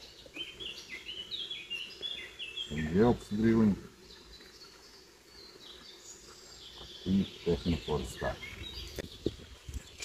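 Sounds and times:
small bird chirping: 0.0s - 10.0s.

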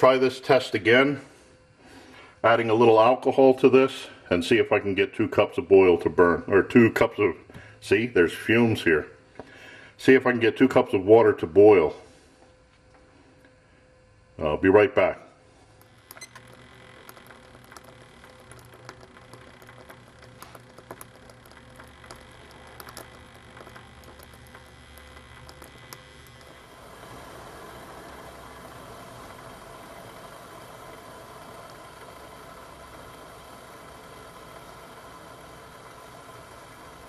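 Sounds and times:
water heating hiss: 15.5s - 37.0s
faint ticks and clicks: 15.8s - 26.8s.

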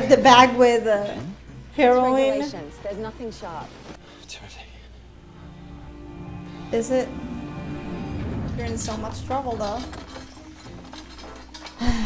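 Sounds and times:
quiet music: 0.0s - 12.0s
held low tone: 5.0s - 11.2s
debris clicking and rattling: 8.2s - 12.0s.

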